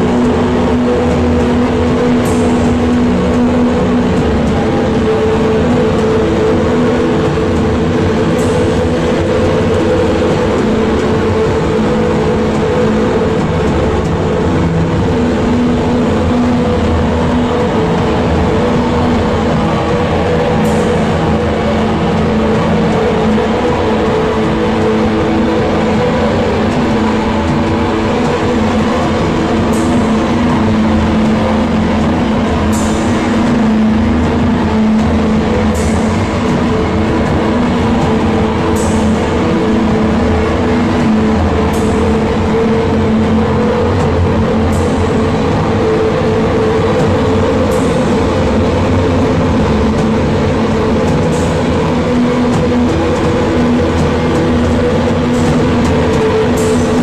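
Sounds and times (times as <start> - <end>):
distorted guitars and bass droning: 0.0 - 57.0.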